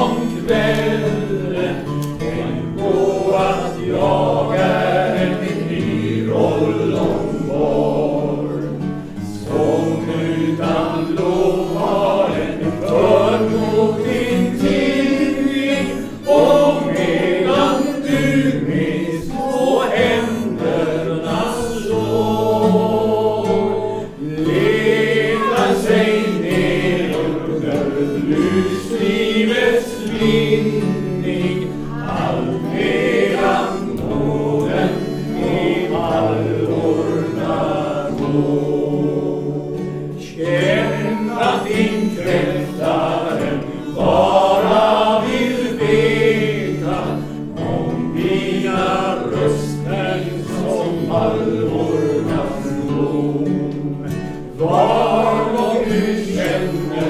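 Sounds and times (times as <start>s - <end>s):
acoustic guitars: 0.0s - 57.0s
group of men singing: 0.0s - 57.0s.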